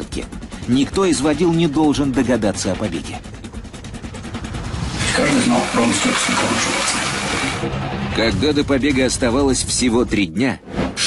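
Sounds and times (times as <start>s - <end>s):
loud steady rushing noise: 0.0s - 10.1s.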